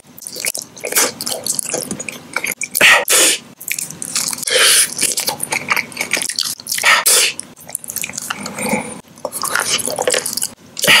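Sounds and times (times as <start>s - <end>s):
wet mouth sounds of eating: 0.0s - 11.0s.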